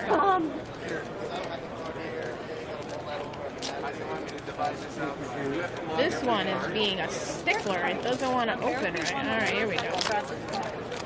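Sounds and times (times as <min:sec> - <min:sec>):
people talking: 0:00.0 - 0:10.8
foil wrapper crinkling: 0:06.1 - 0:11.0.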